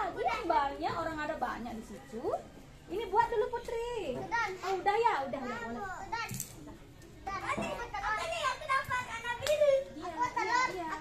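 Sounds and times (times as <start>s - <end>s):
young children talking and calling: 0.0s - 11.0s.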